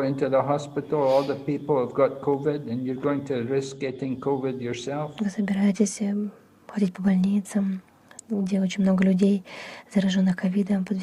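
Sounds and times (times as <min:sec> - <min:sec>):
person talking: 0:00.0 - 0:05.8.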